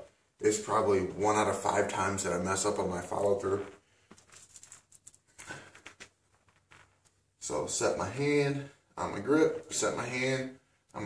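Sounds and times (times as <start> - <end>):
soft rustling: 2.4 - 7.5.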